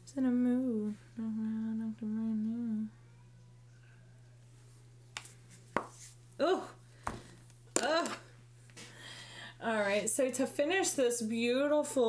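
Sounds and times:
woman humming held notes: 0.1 - 3.0.

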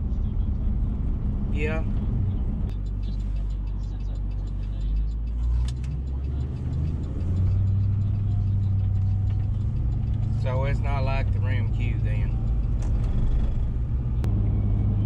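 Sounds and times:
truck engine and road noise: 0.0 - 15.0.

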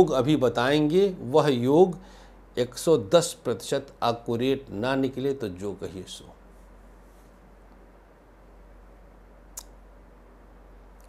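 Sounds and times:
sharp click: 9.6 - 9.8.

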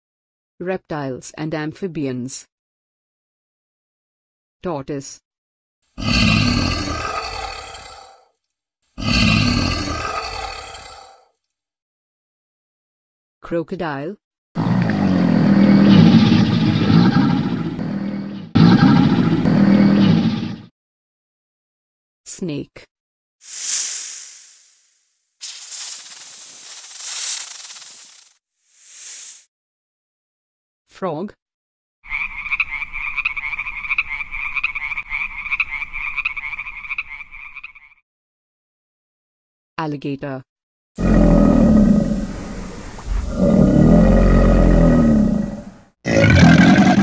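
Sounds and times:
crocodile growl: 6.0 - 8.3, 9.0 - 11.3, 14.6 - 20.7, 41.0 - 47.0.

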